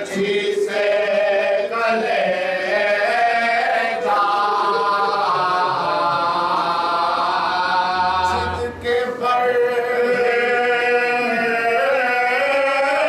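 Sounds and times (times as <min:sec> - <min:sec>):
man chanting unaccompanied: 0:00.0 - 0:13.0.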